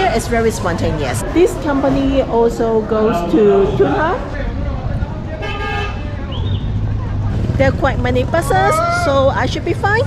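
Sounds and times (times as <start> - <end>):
street traffic rumble: 0.0 - 10.0
vehicle horn honk: 5.4 - 6.0.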